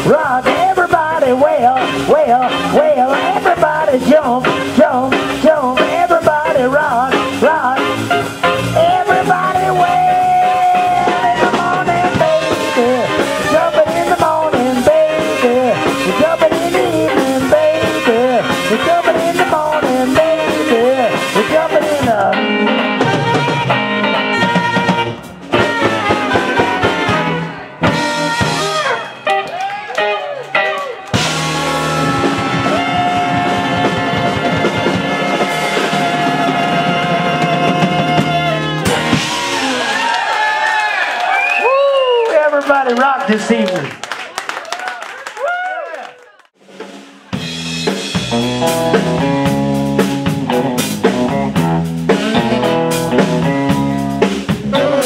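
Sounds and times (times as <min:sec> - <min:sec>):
saxophone: 0:00.0 - 0:40.2, 0:50.5 - 0:55.0
blues band playing: 0:00.0 - 0:55.0.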